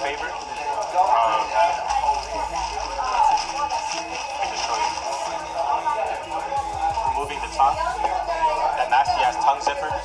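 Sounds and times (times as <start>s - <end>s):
background music: 0.0s - 10.0s
people talking: 0.0s - 10.0s.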